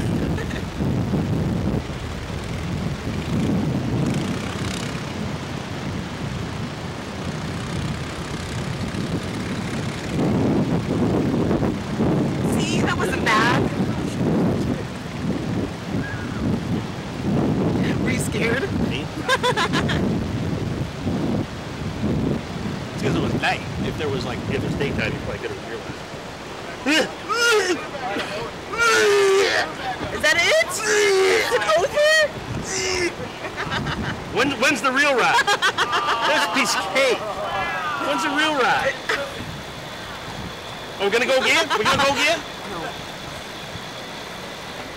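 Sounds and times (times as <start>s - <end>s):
wind buffeting microphone: 0.0s - 44.9s
faint voices: 23.0s - 35.2s, 35.8s - 43.5s.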